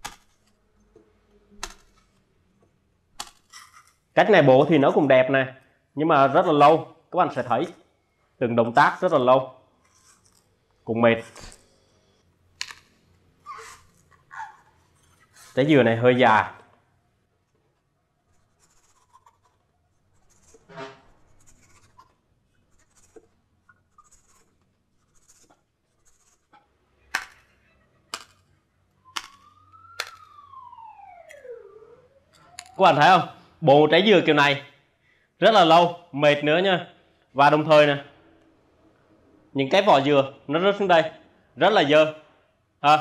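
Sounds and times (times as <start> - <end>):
knife scraping coconut husk: 9.8 - 10.6, 18.3 - 26.8
knife slicing stroke: 20.2 - 23.3
rising and falling tone: 28.9 - 33.6.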